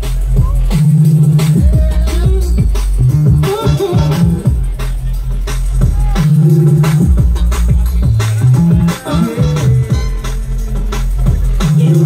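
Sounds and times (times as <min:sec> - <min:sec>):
deep held bass notes: 0:00.0 - 0:12.0.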